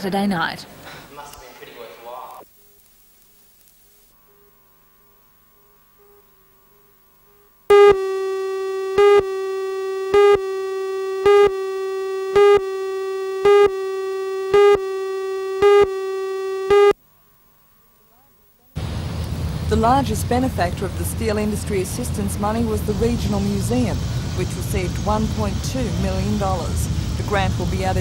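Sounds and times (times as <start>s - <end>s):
beeps: 7.7s - 17.0s
buzzy electronic tone: 7.7s - 17.0s.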